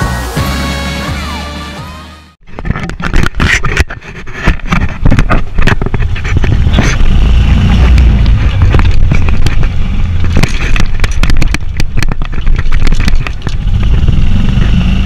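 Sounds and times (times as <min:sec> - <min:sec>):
golf cart rumbling: 0:02.6 - 0:15.0.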